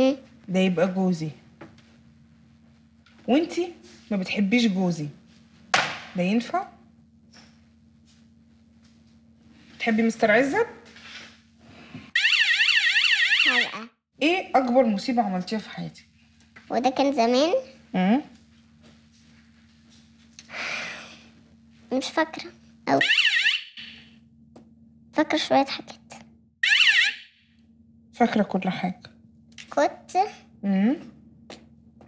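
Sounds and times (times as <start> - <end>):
electronic warbling siren: 12.2 - 13.9, 22.9 - 24.2, 26.6 - 27.5.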